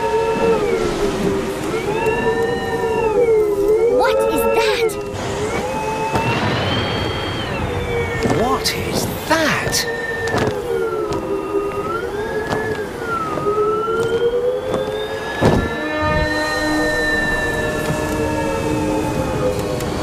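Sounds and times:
held wavering music notes: 0.0 - 6.2
storm wind: 0.0 - 20.0.

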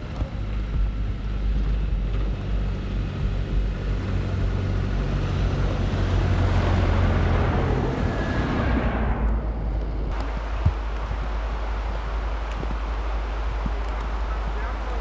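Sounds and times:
low rumble: 0.0 - 15.0
vehicle passing on snow: 0.0 - 15.0.

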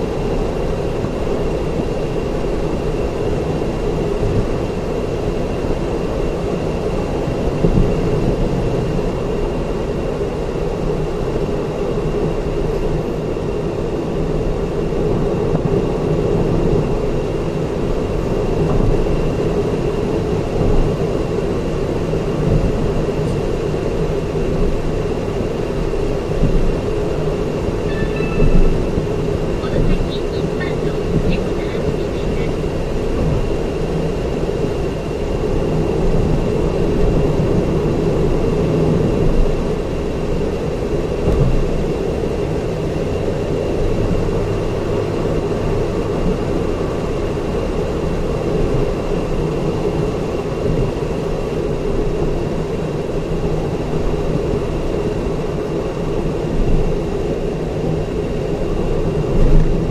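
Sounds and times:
engine hum: 0.0 - 59.9
faint high tone: 27.8 - 29.0.

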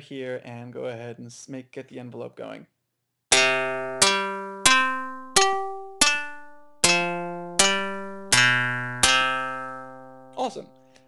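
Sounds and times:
synthesized plucked string notes: 3.3 - 11.0.

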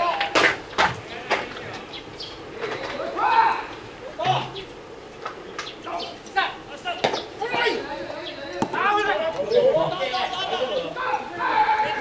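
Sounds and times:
players shouting short calls: 1.0 - 4.8, 5.8 - 12.0.

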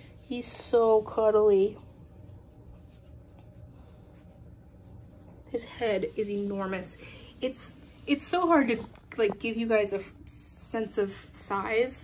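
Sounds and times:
hand rubbing fur: 0.0 - 8.8
low steady rumble: 0.0 - 12.0.

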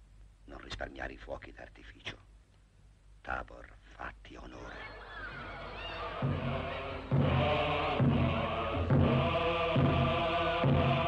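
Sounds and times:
group of voices chanting: 5.4 - 11.0
film score music: 5.6 - 11.0.

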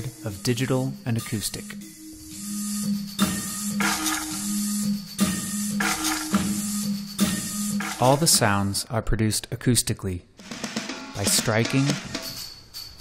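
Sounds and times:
mechanical strikes: 0.0 - 8.5, 10.4 - 12.6.

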